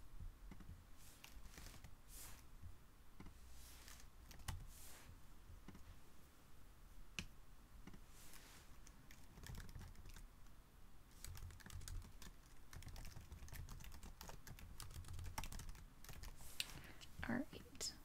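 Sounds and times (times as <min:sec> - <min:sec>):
faint typing on keyboard: 0:00.5 - 0:02.0, 0:03.2 - 0:04.7, 0:07.2 - 0:17.1.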